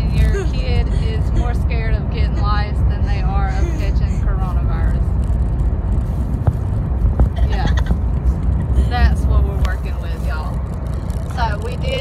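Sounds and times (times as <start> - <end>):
people talking: 0.0 - 5.0, 7.4 - 7.9, 8.6 - 10.6, 11.3 - 12.0
car cabin road rumble: 0.0 - 12.0.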